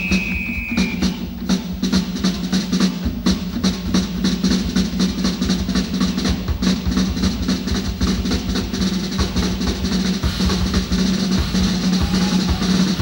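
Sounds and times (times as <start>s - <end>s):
drum toms struck fast: 0.0s - 13.0s.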